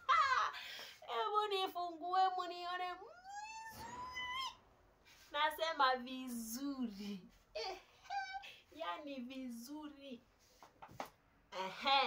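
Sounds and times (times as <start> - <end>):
woman squealing: 3.0 - 4.6, 7.6 - 8.5.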